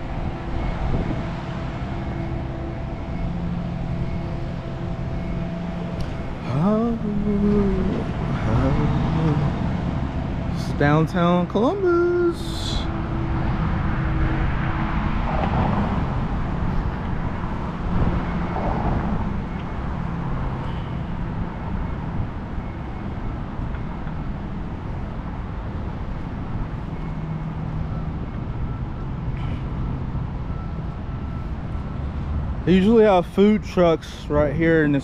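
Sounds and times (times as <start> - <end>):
road traffic of passing cars: 0.0 - 35.0.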